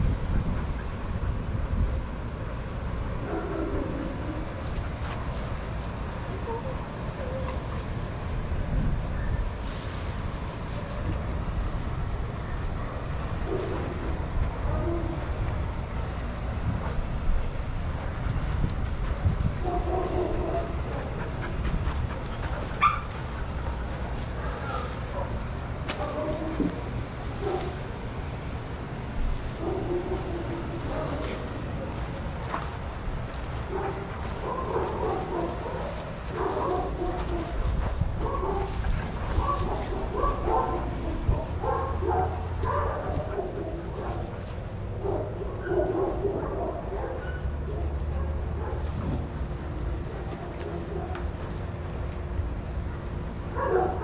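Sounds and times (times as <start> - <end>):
steady low rumble: 0.0 - 45.7
dogs vocalizing while playing: 19.6 - 26.6, 33.4 - 49.4.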